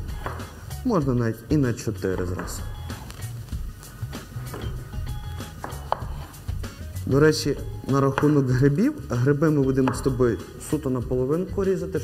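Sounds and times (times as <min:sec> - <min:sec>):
knife cutting on wooden board: 0:00.0 - 0:00.6, 0:02.1 - 0:03.3, 0:04.1 - 0:06.5
music with bass beat: 0:02.2 - 0:08.6.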